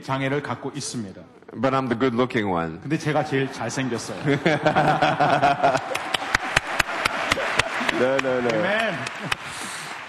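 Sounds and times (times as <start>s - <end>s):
audience laughing: 3.4s - 10.0s
audience clapping: 5.0s - 10.0s.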